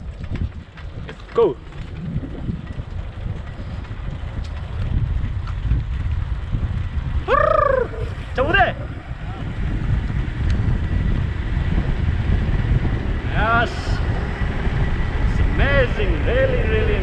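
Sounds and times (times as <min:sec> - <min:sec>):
wind buffeting microphone: 0:00.0 - 0:17.0
man calling out: 0:07.3 - 0:09.4, 0:15.5 - 0:17.0.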